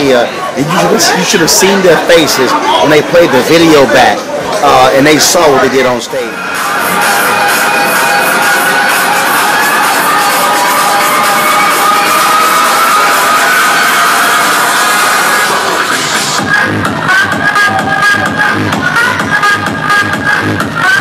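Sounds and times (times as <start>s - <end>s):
crowd noise: 0.0s - 21.0s
electronic dance music: 0.0s - 21.0s
thumping beat: 16.2s - 21.0s.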